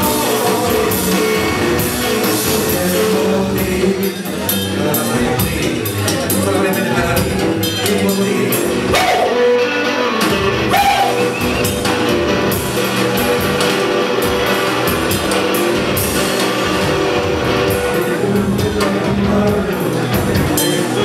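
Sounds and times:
drums: 0.0s - 21.0s
electric guitar: 0.0s - 21.0s.

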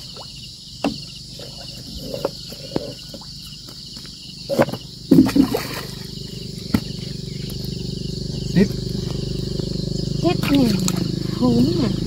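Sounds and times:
steady insect buzz: 0.0s - 12.0s.

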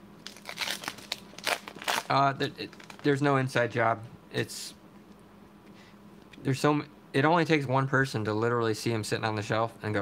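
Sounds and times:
foil wrapper crinkling: 0.2s - 3.2s.

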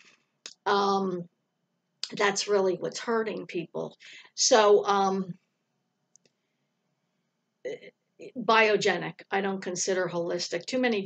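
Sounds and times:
woman speaking: 0.5s - 1.2s, 2.0s - 5.3s, 7.7s - 11.0s.

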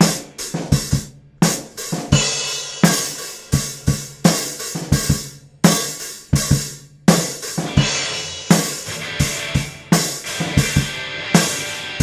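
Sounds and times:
kick drum beats: 0.0s - 9.8s.

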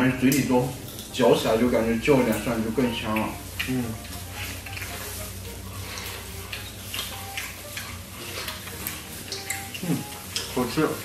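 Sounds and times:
wet chewing and smacking: 3.0s - 11.0s.

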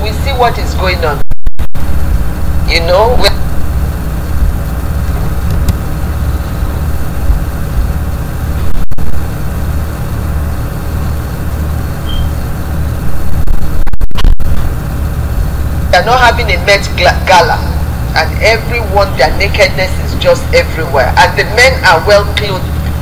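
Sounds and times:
deep low rumble: 1.2s - 11.6s, 12.3s - 16.0s.

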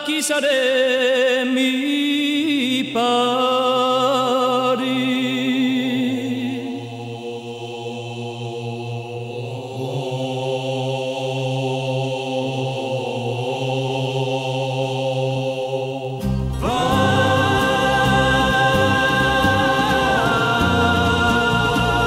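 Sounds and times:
vocal group singing held chords: 1.5s - 22.0s
low drone: 16.2s - 22.0s.

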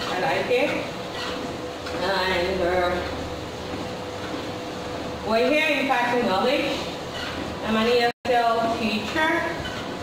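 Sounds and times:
treadmill hum: 0.0s - 10.0s.

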